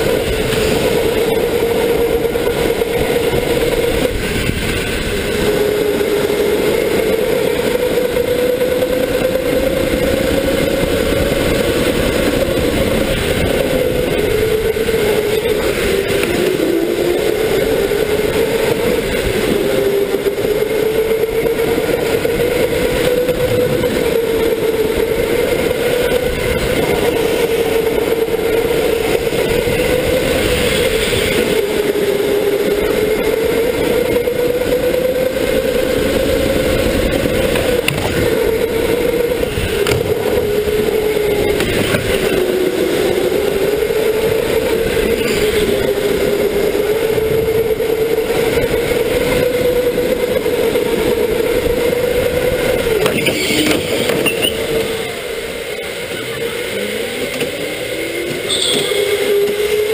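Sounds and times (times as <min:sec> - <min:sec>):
electric motor whine: 0:00.0 - 0:59.9
tyre and track noise: 0:00.0 - 0:59.9.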